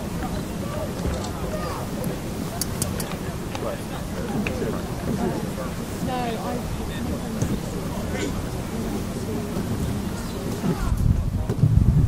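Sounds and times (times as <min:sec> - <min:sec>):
faint distant voices: 0:00.0 - 0:12.0
wind buffeting microphone: 0:00.0 - 0:12.0.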